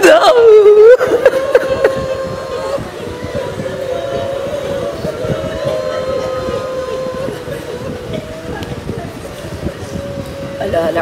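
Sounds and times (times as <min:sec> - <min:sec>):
woman wailing in mourning: 0:00.0 - 0:09.2.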